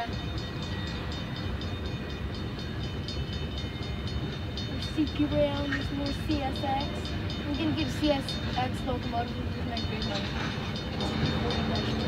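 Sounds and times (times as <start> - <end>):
freight train rumbling past: 0.0 - 12.0
railroad crossing bell ringing: 0.0 - 12.0.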